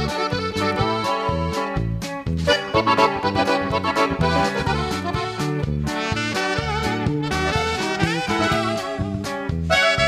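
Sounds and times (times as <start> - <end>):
bass notes: 0.0 - 10.0
button accordion melody: 0.0 - 10.0.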